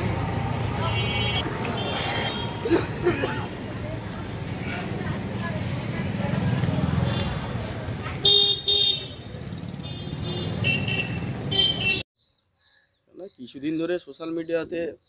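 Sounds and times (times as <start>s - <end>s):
street traffic noise: 0.0s - 12.1s
vehicle horn beeps: 8.2s - 9.2s, 9.8s - 12.0s.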